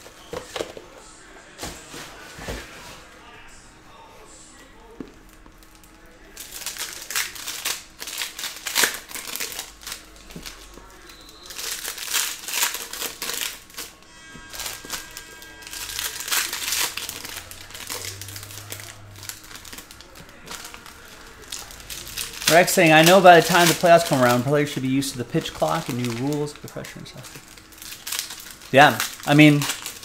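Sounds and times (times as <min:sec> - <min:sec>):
foil wrappers crinkling: 0:04.8 - 0:30.0
cards shuffling: 0:14.5 - 0:30.0.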